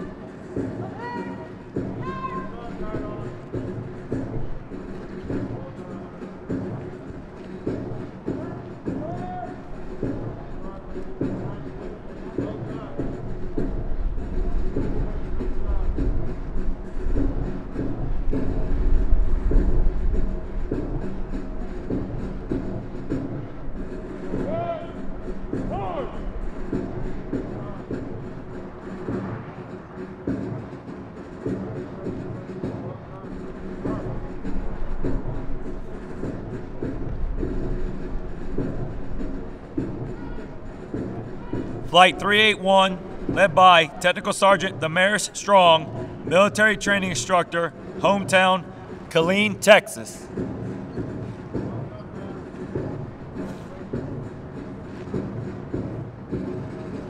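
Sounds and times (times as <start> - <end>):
march music: 41.9 - 50.2
scattered voices: 41.9 - 50.2.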